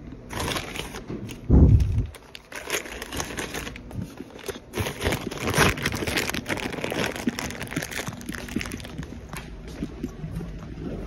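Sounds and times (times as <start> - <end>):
plastic packaging crinkling: 0.2 - 9.6.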